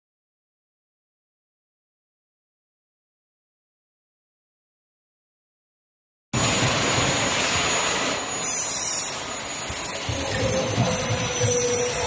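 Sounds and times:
machine rushing noise with rumble: 6.4 - 8.5.

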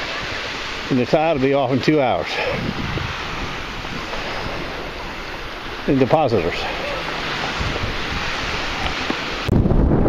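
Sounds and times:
surf washing onto shore: 0.0 - 10.0
wind buffeting microphone: 0.0 - 10.0.

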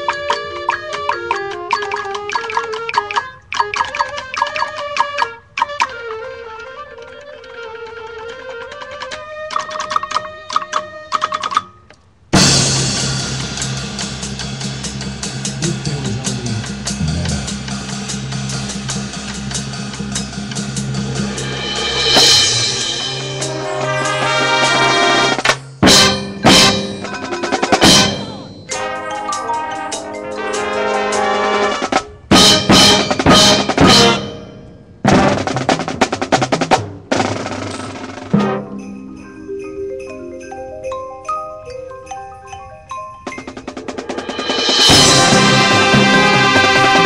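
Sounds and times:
marching band playing: 0.0 - 6.1, 12.4 - 40.5, 43.2 - 47.0
cymbal crash: 12.4 - 28.8, 32.3 - 35.6, 44.1 - 47.0
drum strikes: 12.4 - 39.6, 43.3 - 47.0.

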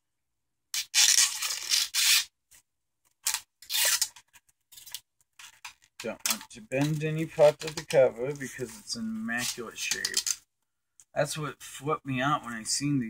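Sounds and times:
plastic wrap tearing: 0.8 - 2.3.

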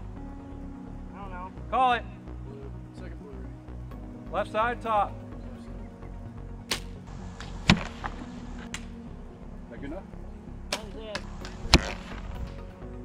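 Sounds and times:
bowstrings snapping: 6.7 - 9.0, 10.7 - 12.7
arrows striking foam target: 10.7 - 12.3.

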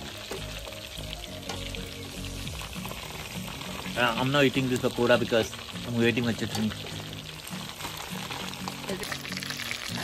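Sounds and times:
background music: 0.0 - 10.0
deep-frying sizzle in oil: 0.0 - 10.0.

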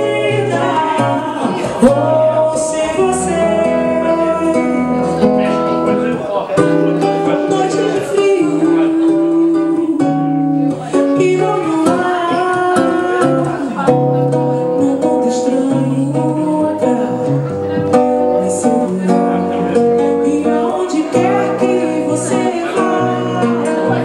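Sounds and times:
woman singing into microphone: 0.0 - 5.2, 7.2 - 24.0
strummed acoustic guitar: 0.0 - 24.0.

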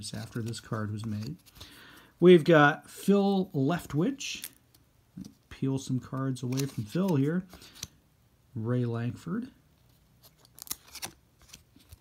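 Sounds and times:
cards peeling apart with cracks: 6.4 - 8.0, 10.3 - 12.0.

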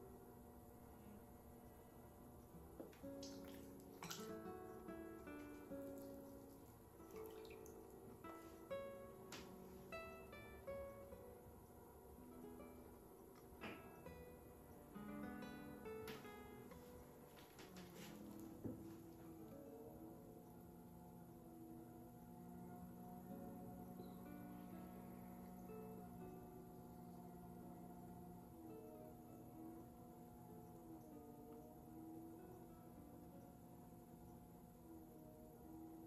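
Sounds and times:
plucked acoustic guitar music: 2.6 - 11.5, 12.2 - 19.6.

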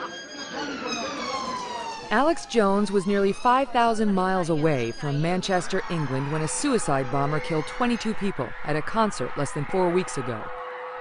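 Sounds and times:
siren wailing: 0.0 - 11.0.

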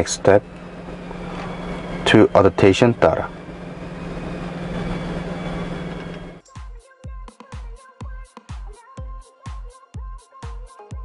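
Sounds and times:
low hum: 0.0 - 6.4.

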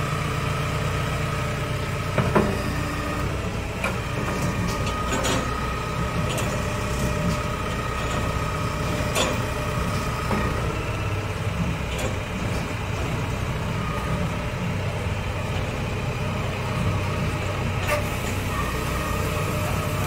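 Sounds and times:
telehandler engine running: 0.0 - 20.0.

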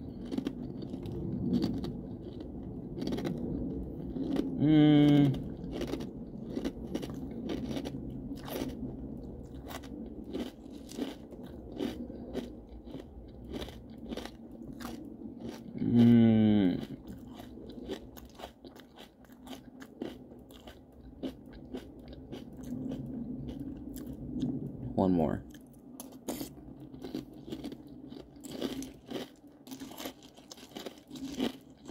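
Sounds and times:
chewing crunchy cereal: 0.0 - 24.6, 25.4 - 31.9
person humming mmm: 4.6 - 5.5, 15.7 - 17.0.

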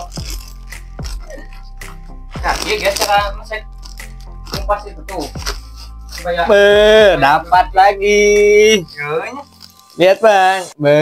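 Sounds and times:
plastic snack packet crinkling: 0.0 - 0.7, 2.4 - 5.6, 9.4 - 10.2
background music: 0.0 - 11.0.

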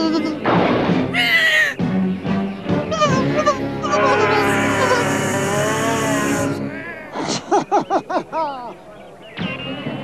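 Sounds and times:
background music: 0.0 - 6.8.

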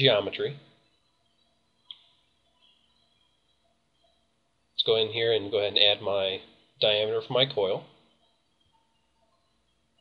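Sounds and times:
very faint ticks: 1.8 - 4.2.

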